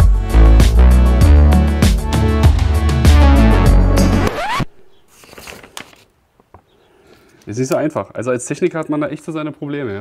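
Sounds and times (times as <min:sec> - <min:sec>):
background music: 0:00.0 - 0:04.7
paper sheets rustling: 0:05.1 - 0:06.1.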